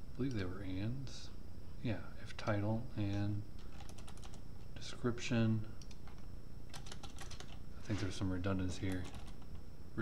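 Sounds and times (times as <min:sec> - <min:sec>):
computer keyboard typing: 0:03.1 - 0:04.4, 0:05.8 - 0:07.6, 0:08.9 - 0:09.6.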